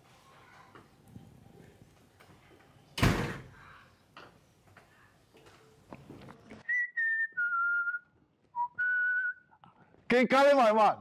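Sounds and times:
man whistling a tune: 0:06.6 - 0:09.6.

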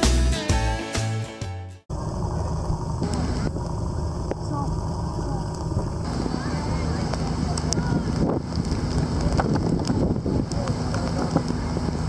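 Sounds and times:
guitar music: 0:00.0 - 0:01.8
low steady rumble: 0:01.9 - 0:12.0
faint distant voices: 0:04.4 - 0:12.0.

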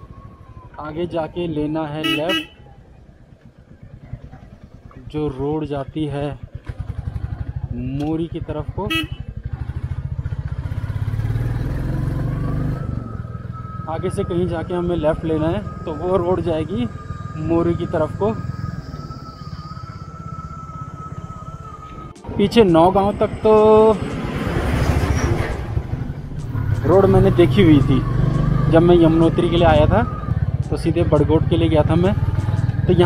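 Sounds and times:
motorcycle engine running: 0:00.0 - 0:33.0
road and wind noise: 0:00.0 - 0:33.0.

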